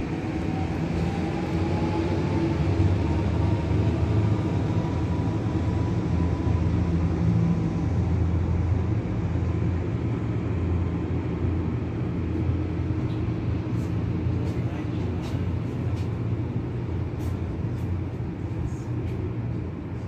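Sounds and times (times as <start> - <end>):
cruise ship low rumble: 0.0 - 20.0.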